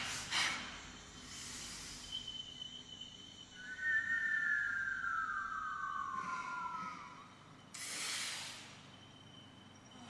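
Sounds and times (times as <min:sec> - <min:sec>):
men whistling falling note: 0:03.2 - 0:07.7.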